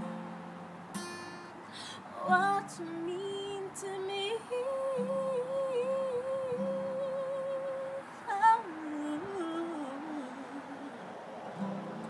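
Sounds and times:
acoustic guitar: 0.0s - 12.0s
woman singing: 1.8s - 11.0s.

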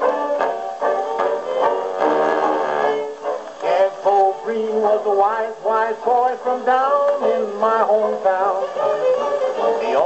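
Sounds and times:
jug band string accompaniment: 0.0s - 10.0s
man singing: 3.6s - 8.9s.

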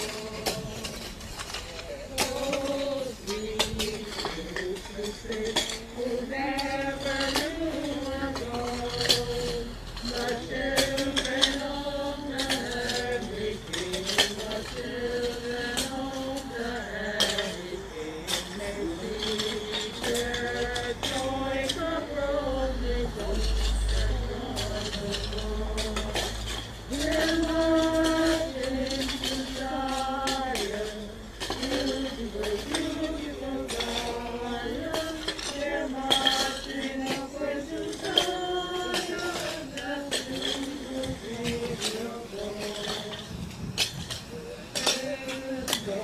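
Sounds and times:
shovels scraping stony rubble: 0.0s - 46.0s
voices singing: 0.0s - 46.0s.

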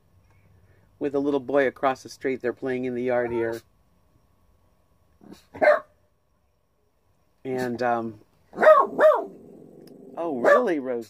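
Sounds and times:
dog barking: 5.3s - 6.0s, 8.5s - 9.7s, 10.4s - 10.8s.

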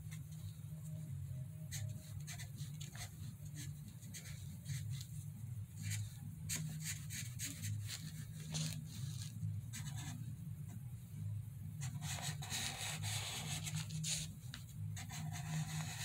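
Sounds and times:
steady low hum: 0.0s - 16.0s
felt marker stroking paper: 1.7s - 5.2s, 5.8s - 10.2s, 11.8s - 16.0s.

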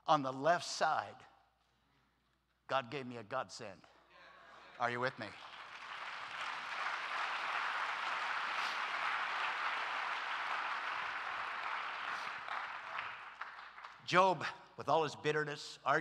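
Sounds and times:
congregation applauding: 4.8s - 14.4s.

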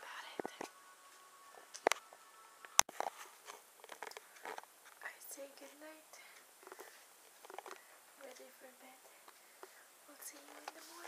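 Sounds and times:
woman whispering: 0.0s - 0.7s, 5.0s - 6.4s, 10.1s - 11.0s.

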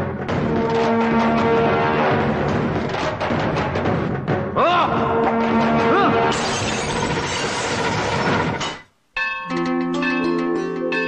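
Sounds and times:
glass shattering: 6.3s - 11.0s.

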